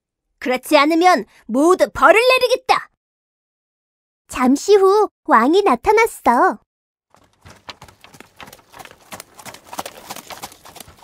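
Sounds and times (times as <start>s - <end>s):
horse hooves clip-clopping: 7.1s - 11.0s.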